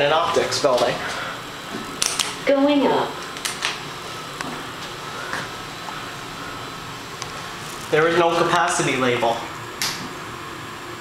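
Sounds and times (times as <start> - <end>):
elevator hum: 0.0 - 11.0.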